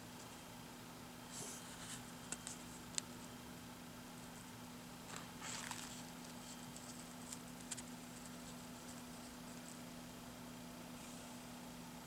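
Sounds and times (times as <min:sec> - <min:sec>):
low steady hum: 0:00.0 - 0:12.0
hand brushing paper pages: 0:05.1 - 0:09.9.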